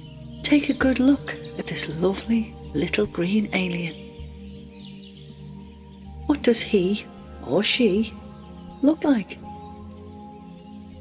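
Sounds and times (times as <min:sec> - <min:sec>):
soft music of held notes: 0:00.0 - 0:11.0.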